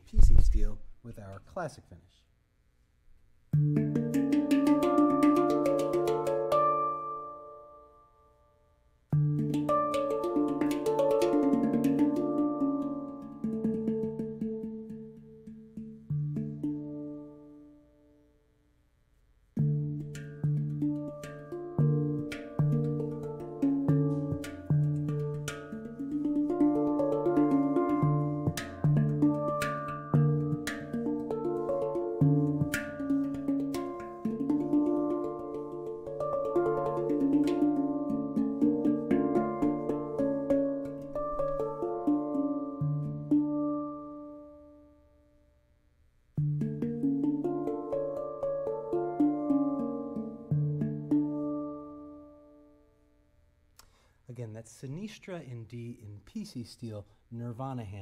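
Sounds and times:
handpan struck by hand: 0:03.5 - 0:07.8, 0:09.1 - 0:17.7, 0:19.6 - 0:44.8, 0:46.4 - 0:52.8.

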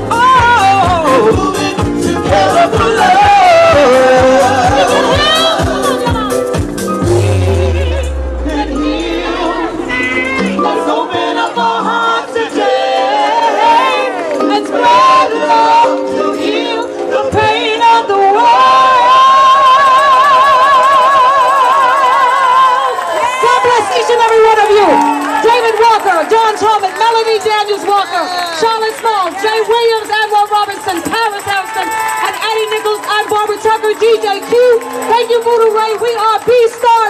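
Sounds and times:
women singing gospel: 0:00.0 - 0:23.2.

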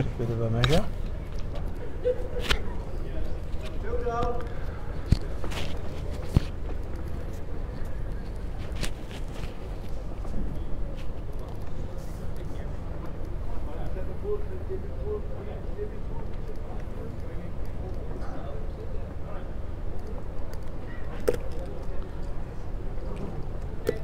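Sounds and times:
faint distant voices: 0:00.0 - 0:24.0
steady low hum: 0:00.0 - 0:24.0.

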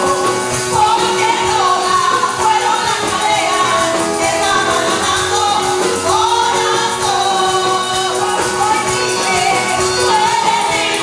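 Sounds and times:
music accompaniment: 0:00.0 - 0:11.0
woman singing into a microphone: 0:00.0 - 0:11.0.

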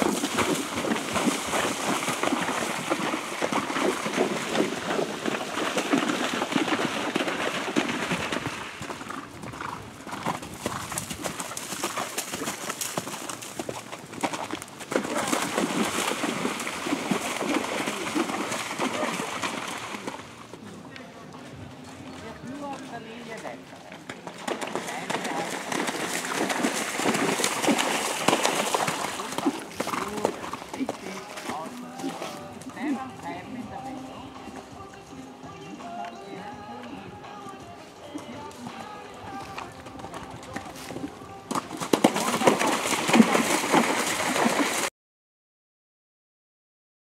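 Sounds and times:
horse hoofbeats on sand: 0:00.0 - 0:20.8, 0:21.6 - 0:44.9
voices talking: 0:29.1 - 0:41.5.

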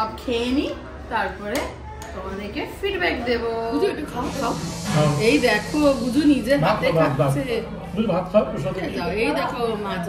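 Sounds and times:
short hissing sound: 0:04.1 - 0:06.5.

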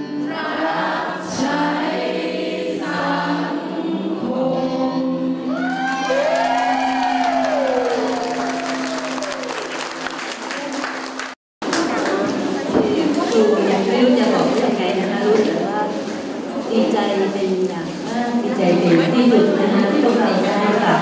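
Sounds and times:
group of voices singing: 0:00.0 - 0:05.7.

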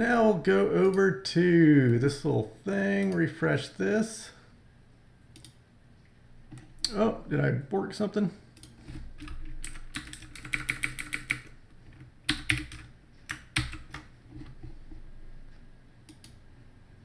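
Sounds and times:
typing on computer keyboard: 0:08.6 - 0:14.1.

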